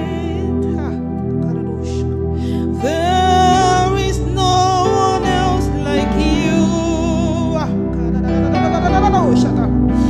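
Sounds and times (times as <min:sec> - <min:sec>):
instrumental backing: 0:00.0 - 0:10.0.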